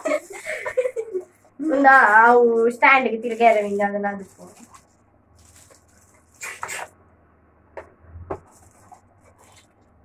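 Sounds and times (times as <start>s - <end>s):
plastic packaging rustling: 1.3s - 6.9s, 8.4s - 10.0s.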